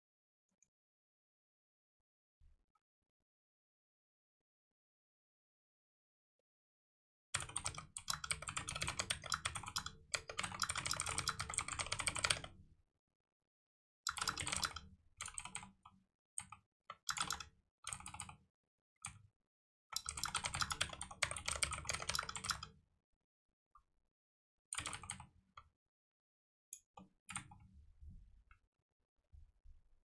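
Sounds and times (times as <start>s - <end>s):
computer keyboard typing: 7.4s - 12.5s, 14.1s - 15.8s, 17.1s - 18.3s, 20.0s - 22.7s, 24.8s - 25.2s.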